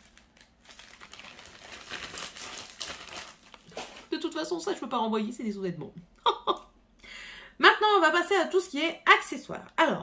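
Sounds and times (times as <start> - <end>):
packaging crinkling and rustling: 0.0 - 4.5.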